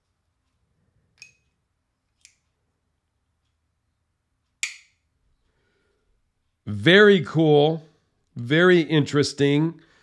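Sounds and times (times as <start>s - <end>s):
knife blade snapping shut: 4.6s - 4.9s
folding knife clicking: 4.6s - 5.0s.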